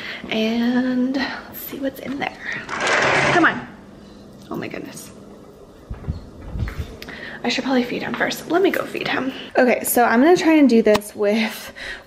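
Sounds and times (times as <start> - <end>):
soft low thumps: 5.8 - 7.0.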